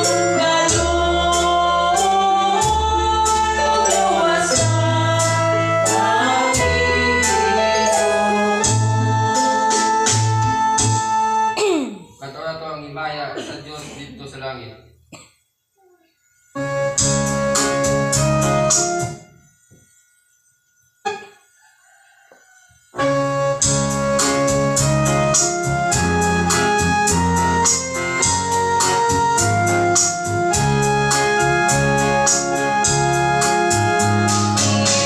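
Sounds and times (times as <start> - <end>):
organ playing hymn chords: 0.0 - 12.9, 16.2 - 22.0, 23.0 - 35.0.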